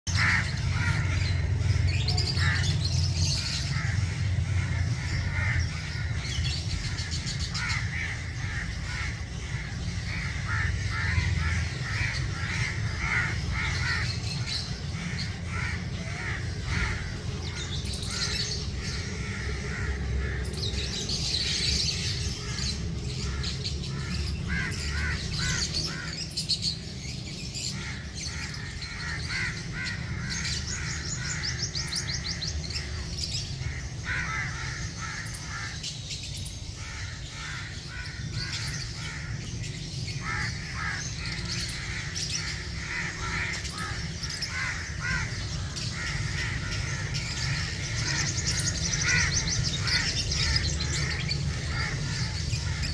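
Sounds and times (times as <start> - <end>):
birds chirping: 0.0 - 52.9
caw-like bird calls: 0.1 - 52.9
steady low rumble: 0.1 - 52.9.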